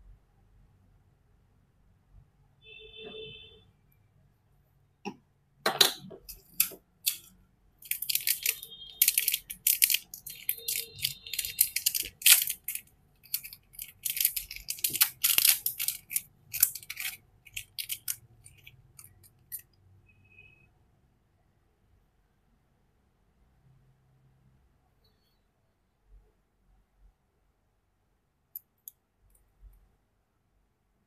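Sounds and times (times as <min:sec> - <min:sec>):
plastic wrapping crinkling: 0:06.3 - 0:19.6.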